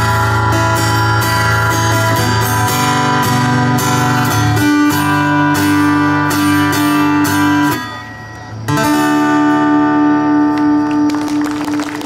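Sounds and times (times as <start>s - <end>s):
audience applause: 10.7s - 12.0s.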